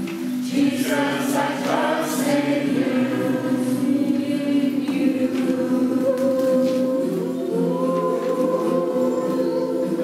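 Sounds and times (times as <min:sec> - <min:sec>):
group singing a hymn: 0:00.3 - 0:10.0.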